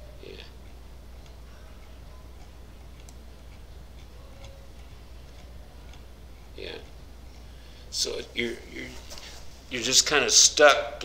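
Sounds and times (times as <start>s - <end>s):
low electrical hum: 0.0s - 11.0s
faint irregular clicking: 0.6s - 6.1s.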